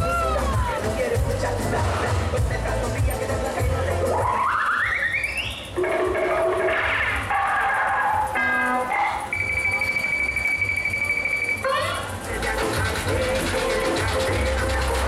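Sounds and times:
fairground music over loudspeakers: 0.0 - 15.0
long steady high tone: 8.2 - 12.3.

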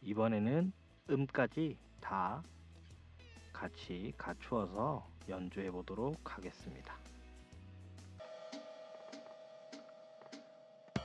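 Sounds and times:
faint backing music: 0.0 - 11.0.

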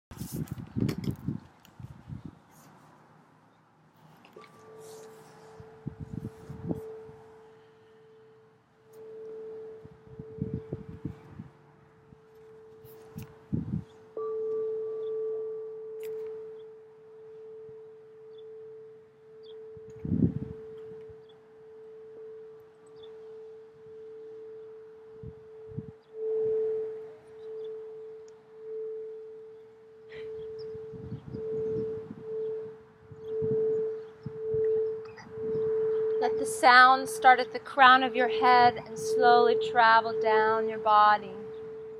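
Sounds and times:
singing bowl ringing tone: 4.4 - 41.9.

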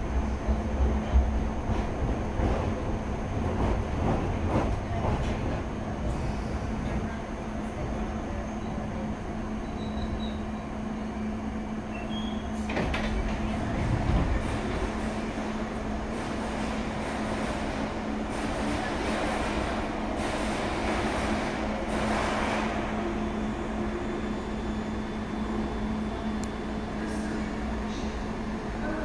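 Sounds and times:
train humming at platform: 0.0 - 29.0.

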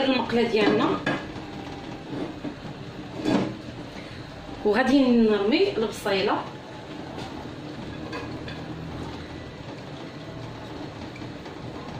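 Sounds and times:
gas burner hissing: 0.0 - 11.9.

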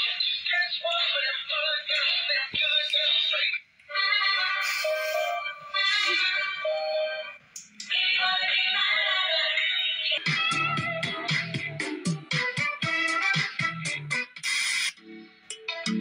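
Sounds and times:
toy speaker playing electronic song: 2.1 - 16.0.

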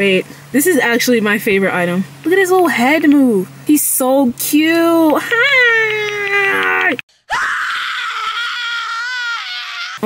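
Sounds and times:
high-pitched vocal squeal: 5.5 - 10.0.

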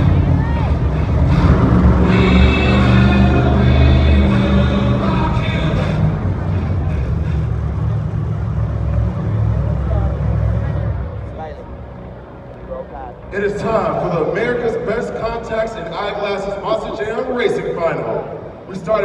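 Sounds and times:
monster truck engine running: 0.0 - 11.4
arena music: 0.0 - 19.0
crowd noise: 0.0 - 19.0.

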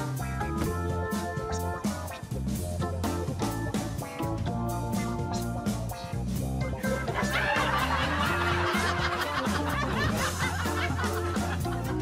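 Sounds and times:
background music with bass line: 0.0 - 12.0
laugh track: 6.0 - 12.0.

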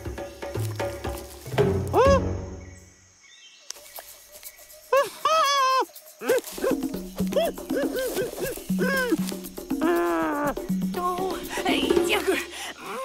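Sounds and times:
cartoon monkey vocal calls: 4.9 - 12.0
background music: 6.2 - 13.0.

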